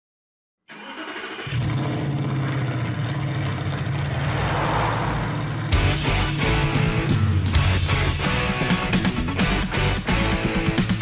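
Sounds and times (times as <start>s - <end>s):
low steady rumble: 2.0s - 6.0s
rock band with electric guitar: 5.7s - 11.0s.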